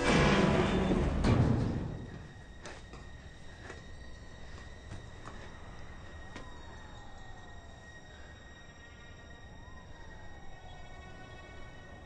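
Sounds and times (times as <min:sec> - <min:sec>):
low city rumble: 0:00.0 - 0:12.0.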